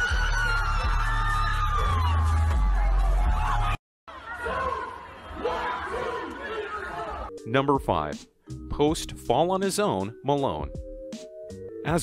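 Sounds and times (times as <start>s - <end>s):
crowd screaming: 0.0s - 7.3s.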